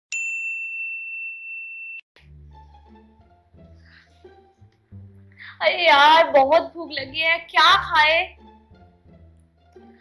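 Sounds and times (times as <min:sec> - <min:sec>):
bright bell-like ding: 0:00.1 - 0:02.0.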